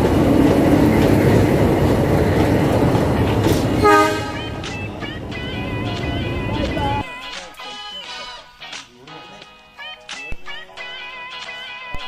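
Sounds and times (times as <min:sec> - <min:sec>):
train wheels rumbling on track: 0:00.0 - 0:07.0.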